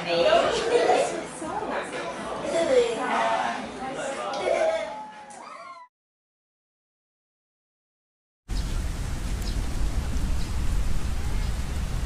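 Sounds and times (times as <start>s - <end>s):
wind buffeting microphone: 8.5s - 12.0s.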